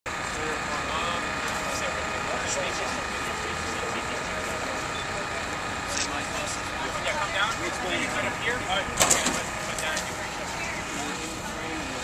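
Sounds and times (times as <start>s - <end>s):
engine running: 0.1s - 12.0s
faint voices: 0.1s - 12.0s.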